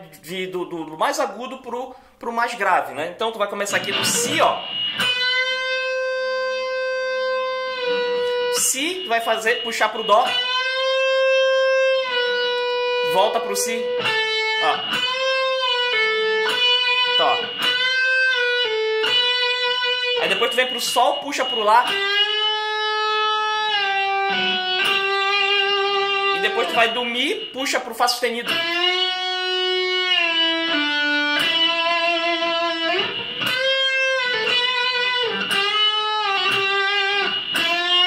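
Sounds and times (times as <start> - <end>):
electric guitar note ringing: 3.7 - 38.0.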